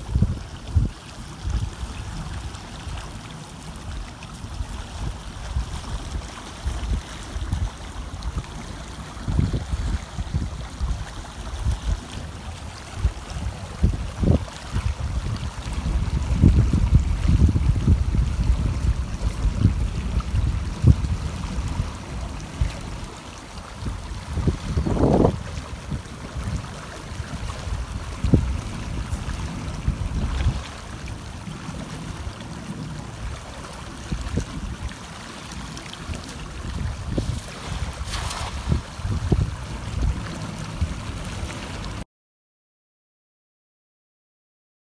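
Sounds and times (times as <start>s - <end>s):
wind buffeting microphone: 0.0s - 3.1s, 3.8s - 35.1s, 35.7s - 42.0s
water running past shore: 0.0s - 42.0s.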